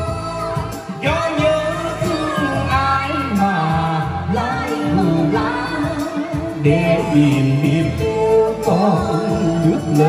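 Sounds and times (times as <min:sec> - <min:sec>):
amplified backing music: 0:00.0 - 0:10.0
woman and man singing duet: 0:00.0 - 0:10.0.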